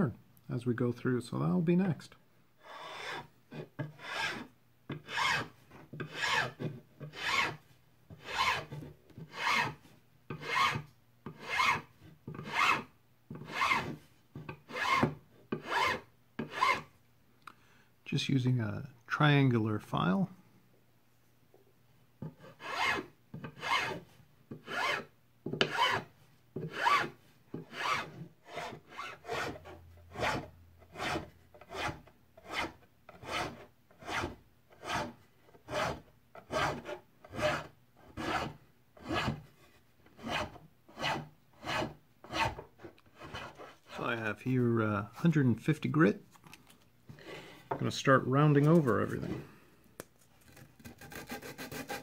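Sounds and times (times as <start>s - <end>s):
metal file rasping on wood: 2.6s - 16.9s, 22.2s - 39.4s, 40.2s - 44.0s, 50.9s - 52.0s.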